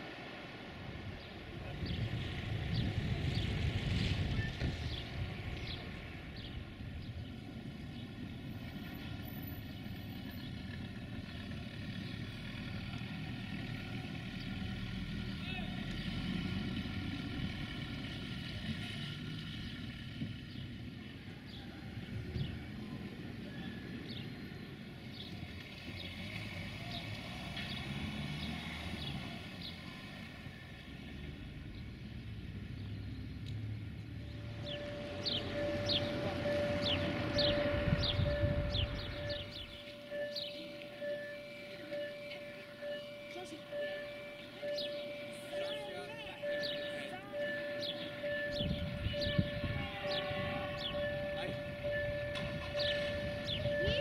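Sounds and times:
small birds chirping: 31.7 - 54.0
steady low rumble: 33.8 - 45.6
level crossing warning tone: 34.2 - 54.0.

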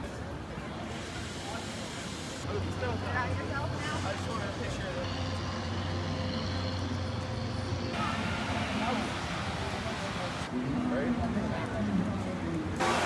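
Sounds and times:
voices of passers-by: 0.0 - 13.0.

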